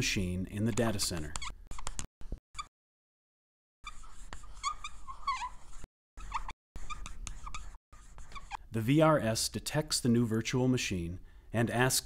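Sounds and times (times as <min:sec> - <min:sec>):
marker pen squeaking: 0:00.7 - 0:02.7, 0:03.8 - 0:08.7.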